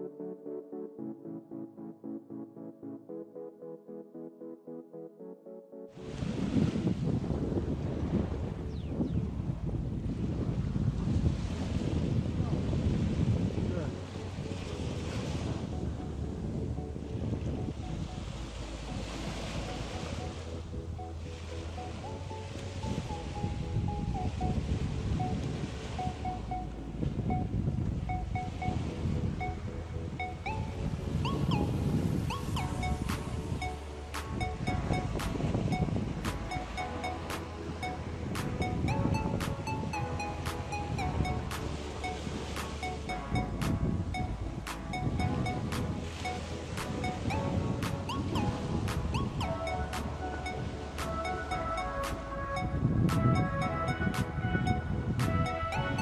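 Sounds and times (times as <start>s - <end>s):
background music melody: 0.0s - 10.0s, 13.4s - 56.0s
waves washing on sandy beach: 6.0s - 8.7s, 9.4s - 54.5s, 55.2s - 56.0s
wind rumbling on microphone: 6.0s - 56.0s
steady music beat: 25.2s - 56.0s.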